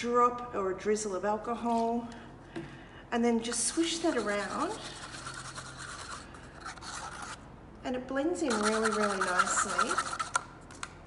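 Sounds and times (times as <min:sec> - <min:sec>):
stir stick scraping paper cup: 0:03.4 - 0:07.5, 0:08.4 - 0:10.5.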